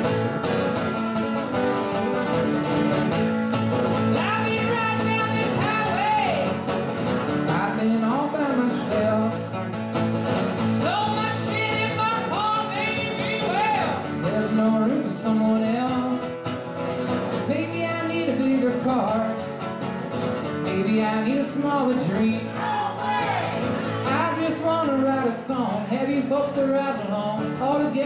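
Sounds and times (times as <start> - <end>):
acoustic guitar strummed: 0.0 - 28.0
man singing: 4.1 - 6.6, 7.4 - 9.6, 10.6 - 16.4, 17.4 - 19.4, 20.6 - 28.0.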